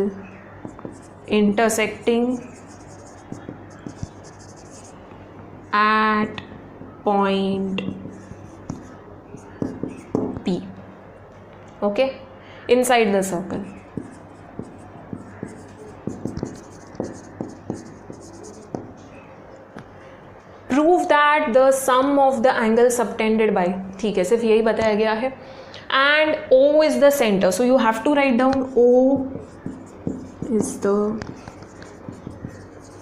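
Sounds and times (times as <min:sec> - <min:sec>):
light marker taps: 0:00.6 - 0:01.1, 0:02.4 - 0:04.7, 0:07.8 - 0:10.6, 0:13.9 - 0:19.0, 0:28.5 - 0:33.0
marker pen scratching on whiteboard: 0:00.6 - 0:05.0, 0:07.8 - 0:10.6, 0:13.6 - 0:19.2, 0:28.6 - 0:33.0.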